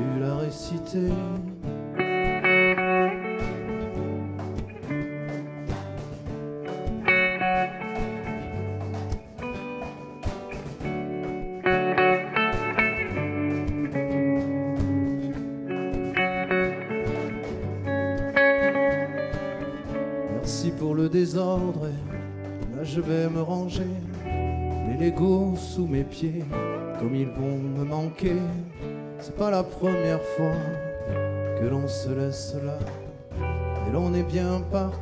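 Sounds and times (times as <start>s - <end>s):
acoustic guitars playing: 0.0s - 35.0s
cajon percussion beat: 0.0s - 35.0s.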